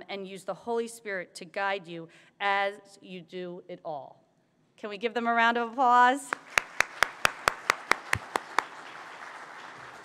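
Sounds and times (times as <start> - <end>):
congregation applauding: 6.3 - 10.0
sharp hand claps: 6.3 - 10.0.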